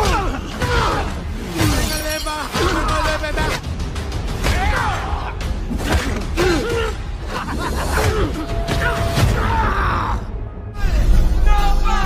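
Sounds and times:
men grunting and yelling: 0.0 - 3.7, 4.4 - 12.0.

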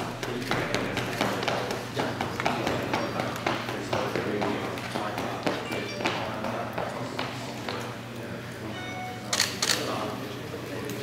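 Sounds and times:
camera shutter firing: 9.3 - 9.9.

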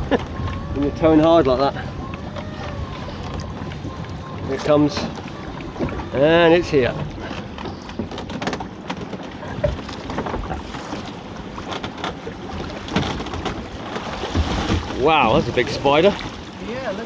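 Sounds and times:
wind on microphone: 0.0 - 11.0
pot and rope knocking on hull: 0.0 - 16.4
water splashing and streaming: 0.0 - 17.0.

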